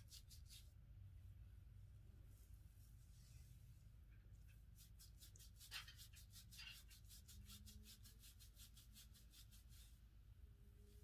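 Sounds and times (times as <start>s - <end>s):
hairbrush strokes through hair: 4.7s - 10.0s.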